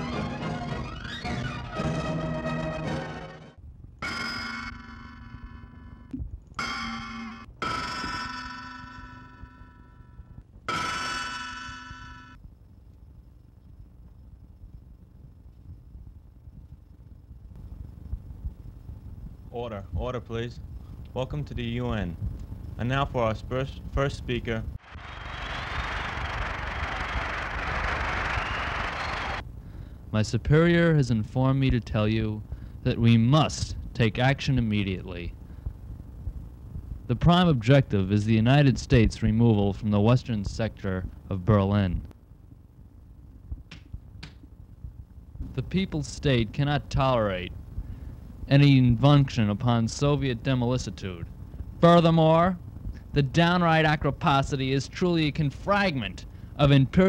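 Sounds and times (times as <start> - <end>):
audience applauding: 24.8 - 29.4.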